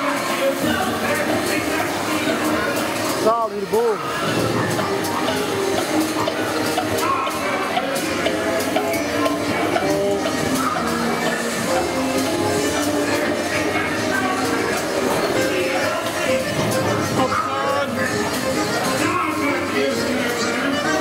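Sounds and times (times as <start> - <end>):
character voices: 1.6 - 21.0.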